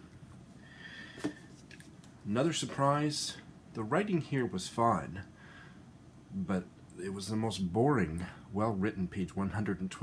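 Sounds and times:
book set down with soft tap: 0:01.2 - 0:01.8.

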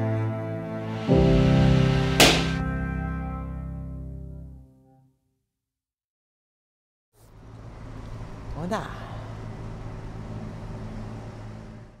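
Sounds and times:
low hum of street traffic: 0:07.2 - 0:12.0.

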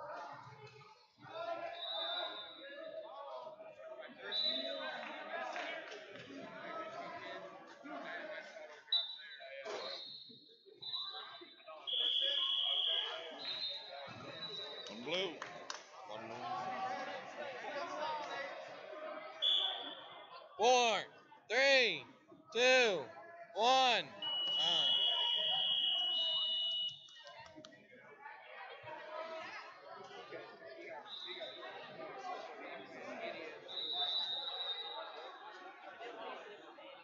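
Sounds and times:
low crowd chatter: 0:00.0 - 0:37.0
hall chatter: 0:11.6 - 0:27.8.

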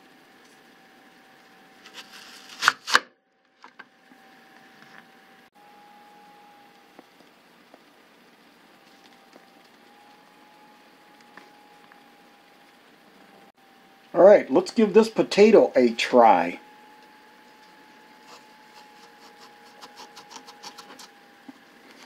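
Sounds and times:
blades crunching through onion: 0:01.8 - 0:03.0, 0:18.7 - 0:21.1.

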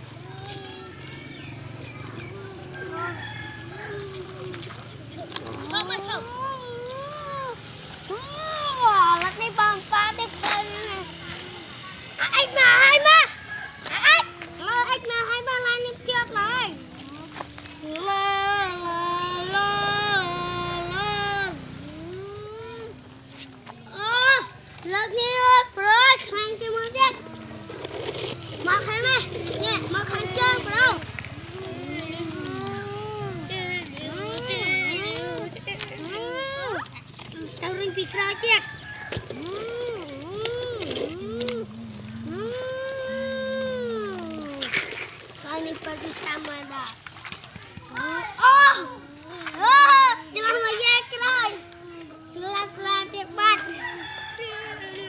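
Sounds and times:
children talking and calling out: 0:00.0 - 0:55.0.

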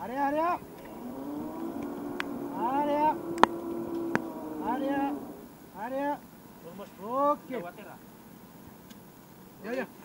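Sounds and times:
low machine hum: 0:00.3 - 0:05.8.

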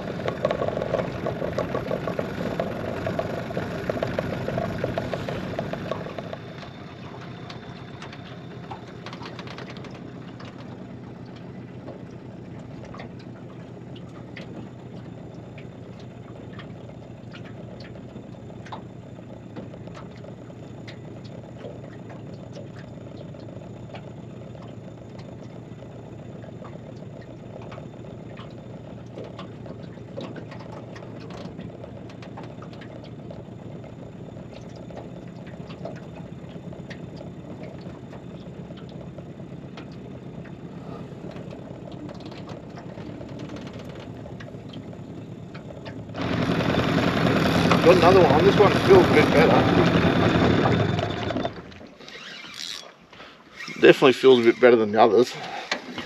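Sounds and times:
outboard motor running: 0:00.0 - 0:56.0
light ticks: 0:26.4 - 0:33.2.

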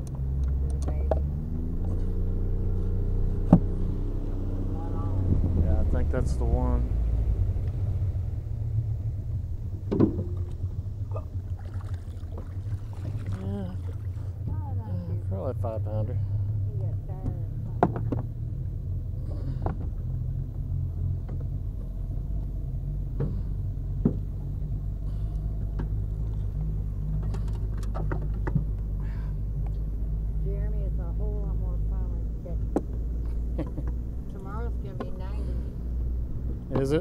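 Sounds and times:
boat motor idling: 0:08.2 - 0:37.0.

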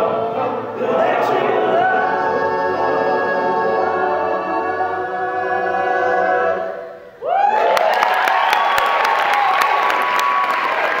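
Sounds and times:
male a cappella group singing: 0:00.0 - 0:07.0
audience cheering and clapping: 0:07.2 - 0:11.0.

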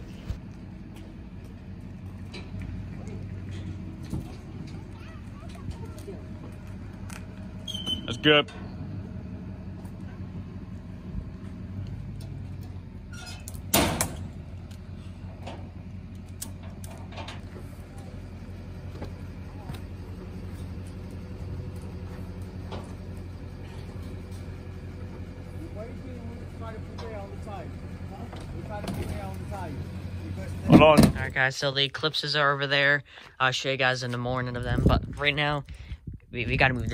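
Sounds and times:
vehicle engine idling: 0:00.0 - 0:36.9.

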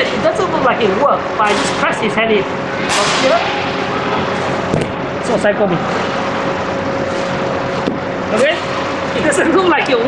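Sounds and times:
electric fans whirring: 0:00.0 - 0:10.0.

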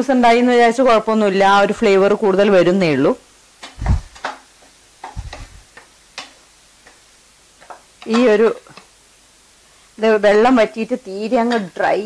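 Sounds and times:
wooden spatula stirring in a pan: 0:03.6 - 0:08.9.

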